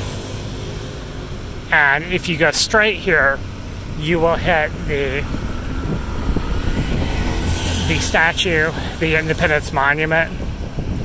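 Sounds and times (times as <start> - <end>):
motorbike and tuk-tuk engines: 0.0 - 11.0.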